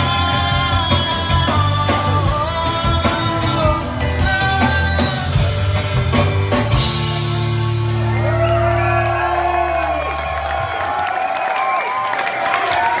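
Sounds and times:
crowd cheering and whistling: 7.0 - 13.0.

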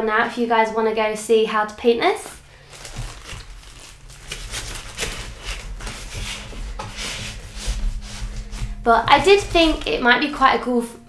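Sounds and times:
paper and folder rustling: 2.4 - 9.8.

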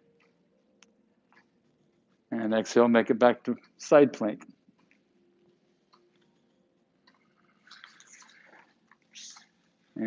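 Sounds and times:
breathy mouth noises: 7.0 - 9.7.

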